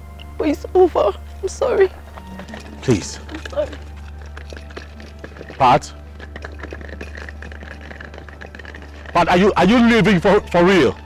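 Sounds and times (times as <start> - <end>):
suitcase wheels rattling on paving: 1.2 - 11.0.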